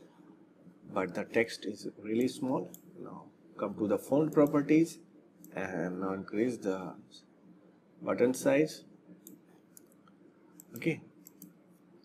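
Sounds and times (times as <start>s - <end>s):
person speaking: 0.8s - 7.3s
computer mouse clicks: 4.2s - 4.6s, 9.2s - 11.7s.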